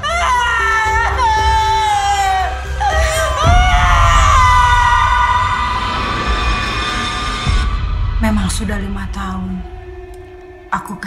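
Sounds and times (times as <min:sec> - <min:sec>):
low rumble: 0:03.2 - 0:11.0.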